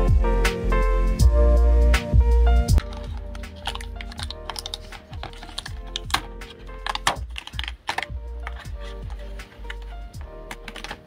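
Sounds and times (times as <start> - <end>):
paper peeling off sticky mat: 2.8 - 11.0.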